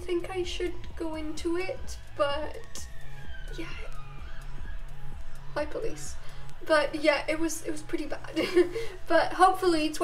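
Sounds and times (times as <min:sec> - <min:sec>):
background music with beat: 0:00.0 - 0:10.0
faint police siren wail: 0:00.6 - 0:09.0.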